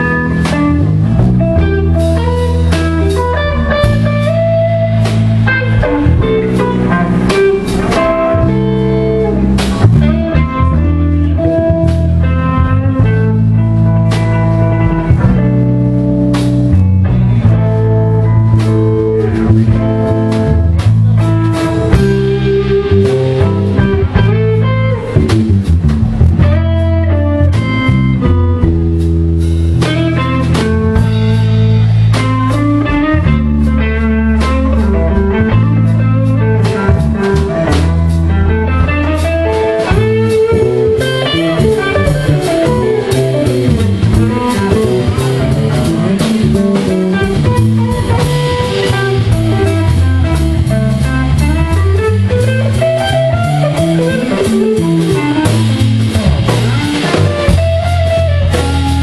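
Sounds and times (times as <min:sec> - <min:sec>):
bass line: 0:00.0 - 0:59.0
drum kit: 0:00.0 - 0:59.0
electric guitar lead line: 0:00.0 - 0:59.0.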